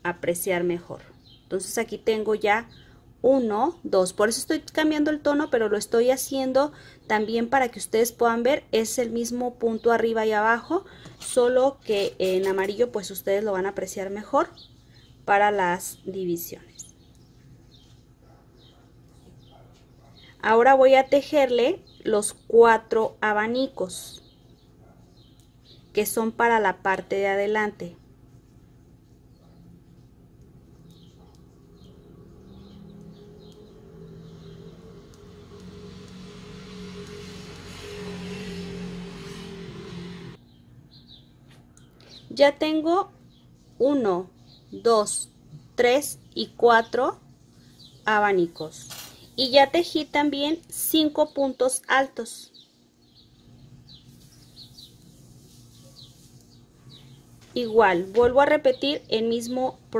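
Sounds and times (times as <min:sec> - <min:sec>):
faint bird chirping: 0:00.4 - 0:07.5, 0:08.8 - 0:59.9.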